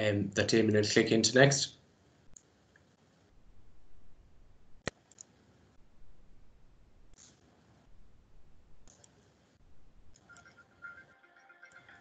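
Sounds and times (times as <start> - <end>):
computer mouse clicks: 2.3 - 2.9, 4.8 - 5.4, 7.1 - 7.4, 8.8 - 9.3
quiet instrumental music: 10.1 - 12.0.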